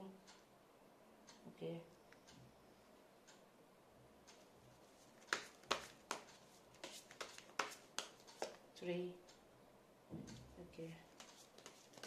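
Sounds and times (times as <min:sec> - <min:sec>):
cards clicking: 0:05.2 - 0:08.6, 0:11.2 - 0:12.0.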